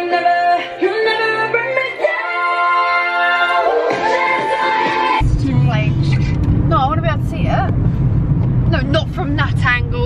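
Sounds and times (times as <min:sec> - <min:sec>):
car engine and road noise: 0:05.2 - 0:10.0.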